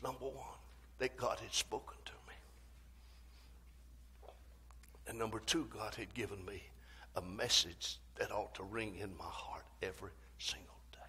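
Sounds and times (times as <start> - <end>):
person speaking: 0.0 - 2.8, 4.7 - 11.0
faint low hum: 0.0 - 11.0.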